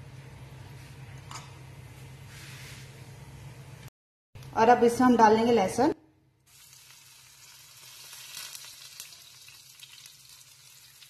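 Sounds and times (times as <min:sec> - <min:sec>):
garlic sizzling in hot oil: 0:06.5 - 0:11.0.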